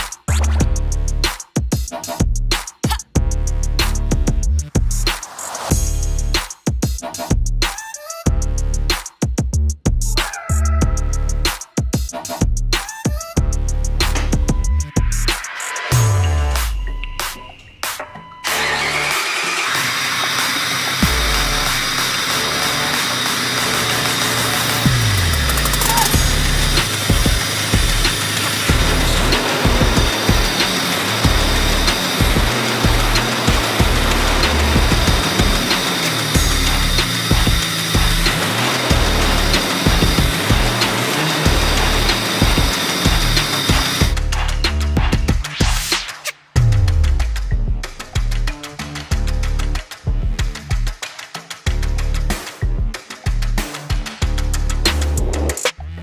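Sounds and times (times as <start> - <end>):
music with heavy bass: 0.0 - 19.2, 19.9 - 56.0
car engine starting and running: 18.4 - 45.2.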